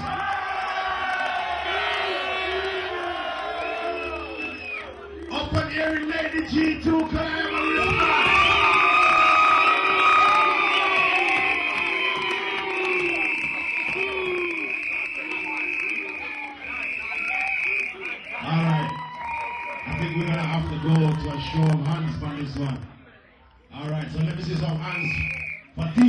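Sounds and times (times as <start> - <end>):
crowd cheering and shouting: 0.0 - 22.9
high-pitched scream or whistle: 3.4 - 5.1, 7.4 - 21.6, 24.8 - 25.9.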